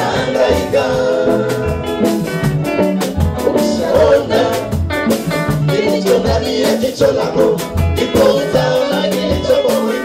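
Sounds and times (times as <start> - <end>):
band with beat and bass: 0.0 - 10.0
choir singing gospel song: 0.0 - 10.0.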